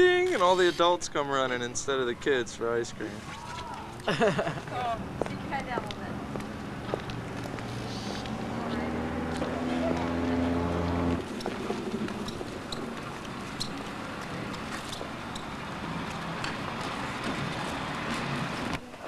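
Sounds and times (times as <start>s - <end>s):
small vehicle engine running: 7.6s - 18.8s.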